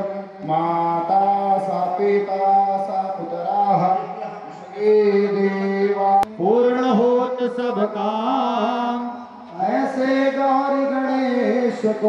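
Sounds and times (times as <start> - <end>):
priest chanting mantras: 0.0 - 12.0.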